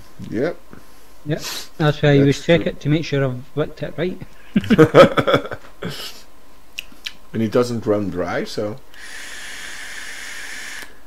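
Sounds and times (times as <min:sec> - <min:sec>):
vape hissing and coil sizzling: 0:08.9 - 0:11.0.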